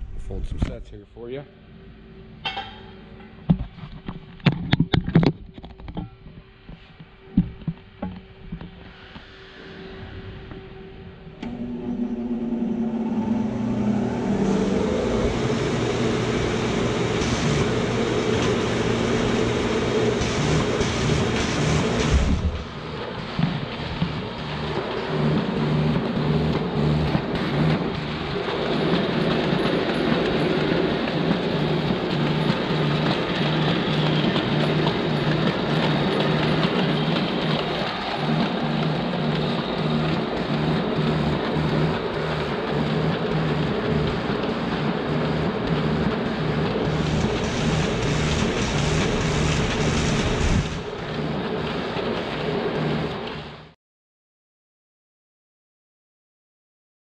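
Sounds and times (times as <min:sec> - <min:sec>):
paper folder machine running: 0:11.4 - 0:53.7.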